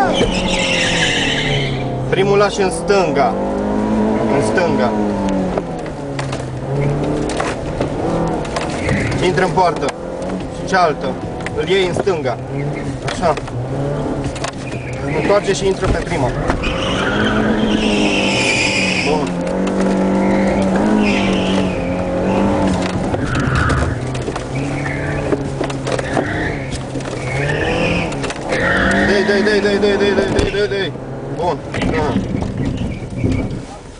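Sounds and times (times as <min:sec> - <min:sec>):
tyre squeal: 0:00.0 - 0:02.1, 0:08.2 - 0:09.7, 0:12.4 - 0:30.8, 0:31.9 - 0:33.8
car engine revving: 0:00.0 - 0:33.8.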